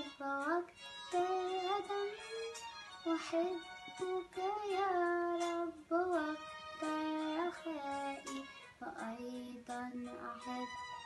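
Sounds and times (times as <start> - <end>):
girl singing a hymn: 0.0 - 11.0.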